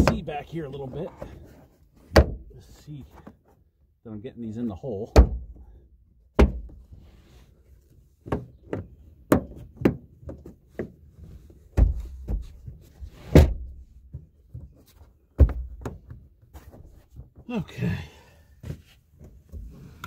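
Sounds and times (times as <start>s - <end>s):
plastic knocks and clunks: 0.0s - 2.5s, 5.1s - 5.7s, 6.3s - 6.9s, 8.2s - 11.0s, 11.7s - 16.3s.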